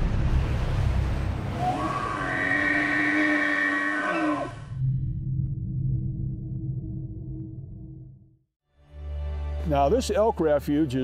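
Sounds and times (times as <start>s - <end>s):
deep rumble: 0.0s - 2.7s, 4.6s - 8.4s.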